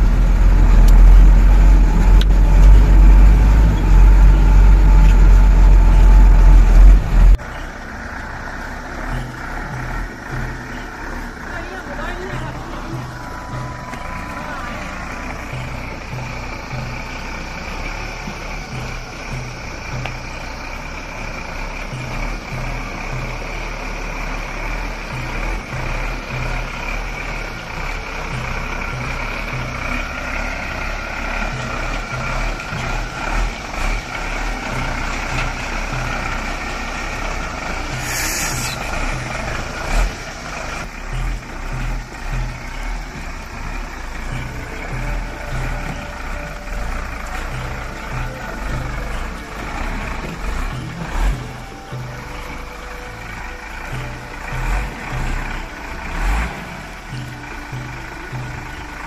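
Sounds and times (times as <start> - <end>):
diesel truck engine throbbing: 0.0 - 59.0
short hiss: 38.0 - 38.9.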